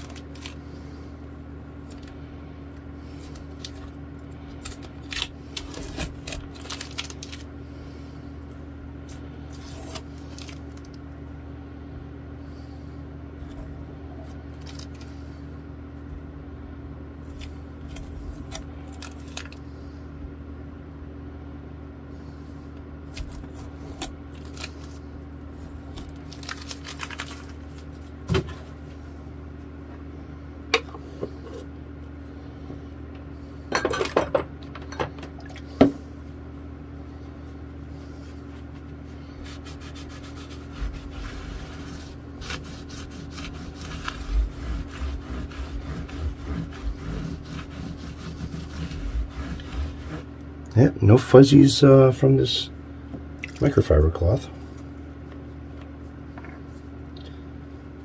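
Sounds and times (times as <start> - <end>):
steady low hum: 0.0 - 58.0
masking tape being peeled: 4.6 - 7.5, 9.1 - 10.9, 23.1 - 25.0, 25.9 - 28.0, 39.4 - 50.3
cloth rubbing on fretboard: 39.4 - 50.4.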